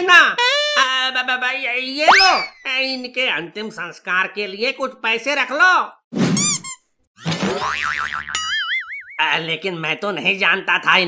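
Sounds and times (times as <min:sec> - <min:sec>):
cartoon boing: 0:02.1 - 0:02.7, 0:07.3 - 0:09.2.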